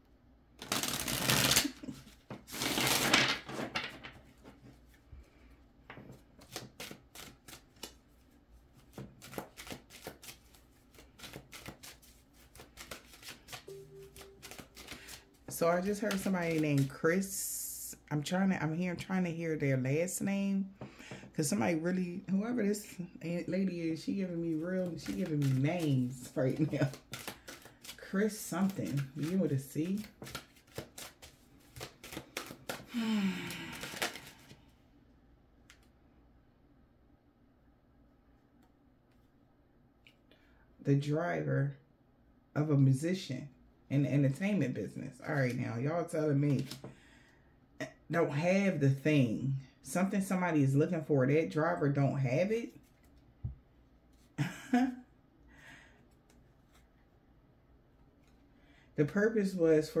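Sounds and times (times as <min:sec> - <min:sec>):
cards shuffled by hand: 0:00.6 - 0:05.0, 0:05.9 - 0:17.0, 0:24.2 - 0:32.9, 0:33.5 - 0:34.6, 0:46.4 - 0:46.9.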